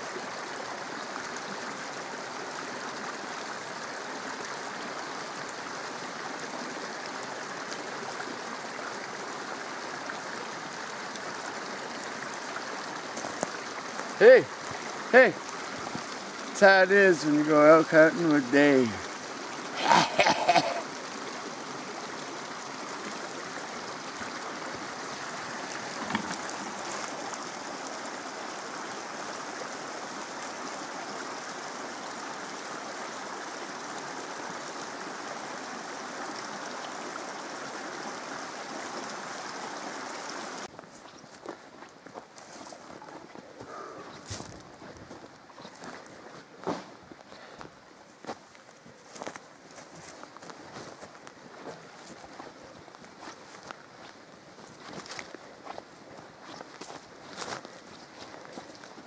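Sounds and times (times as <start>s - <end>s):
footsteps on forest trail: 12.4s - 14.8s, 40.7s - 59.0s.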